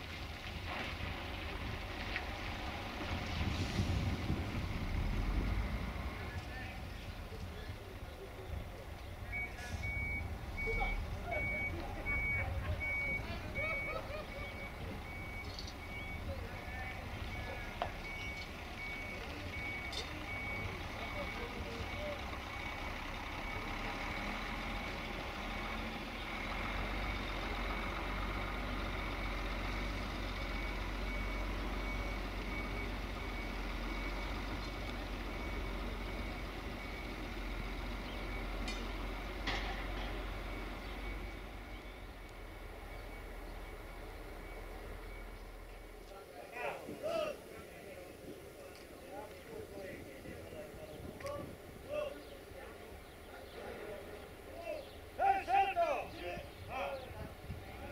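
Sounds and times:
diesel engine rumble: 0.0s - 57.9s
truck reversing alarm beeping: 8.2s - 46.1s.

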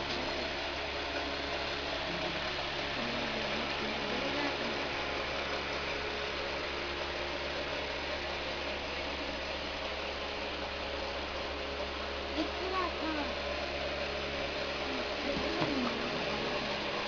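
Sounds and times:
electric fan running: 0.0s - 17.0s.

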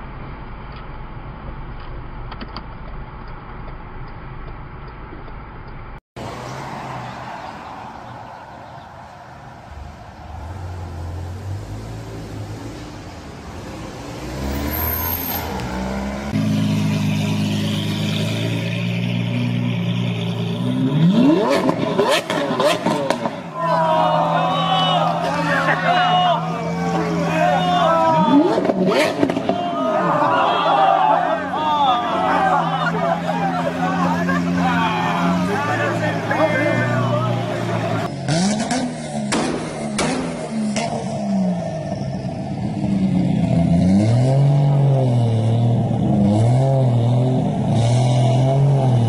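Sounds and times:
sports car engine idling and revving: 10.4s - 23.6s, 31.3s - 49.0s
people's voices: 22.9s - 38.5s.

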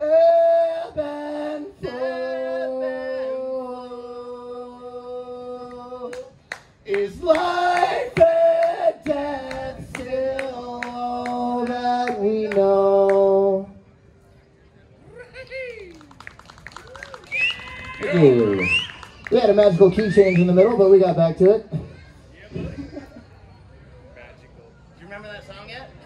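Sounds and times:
man singing long held notes: 0.0s - 6.3s.

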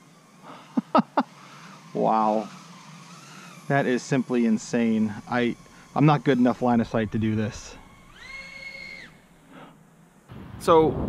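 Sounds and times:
quadcopter motors whining: 0.0s - 10.4s.

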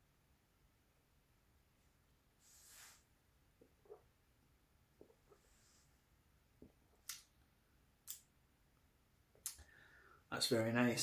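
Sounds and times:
person breathing out: 9.6s - 10.3s.

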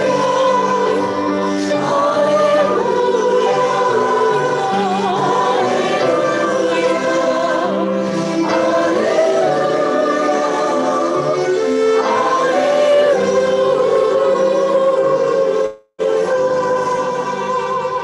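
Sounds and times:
voices singing a slow hymn: 0.0s - 18.0s.

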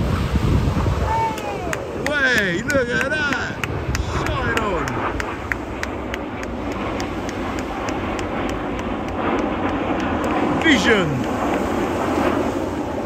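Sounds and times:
distant jet roar: 0.0s - 13.0s.

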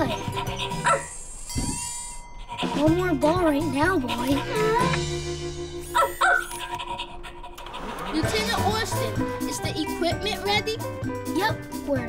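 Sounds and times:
background music with held notes: 0.0s - 1.0s, 2.6s - 12.0s
cartoon animal yelp: 0.0s - 5.0s, 5.8s - 10.1s.

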